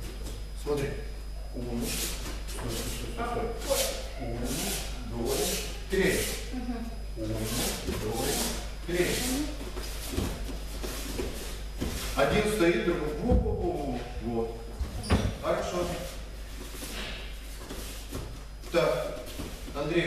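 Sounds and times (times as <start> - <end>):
uniforms swishing on mat: 7.4 - 12.5, 15.9 - 19.8.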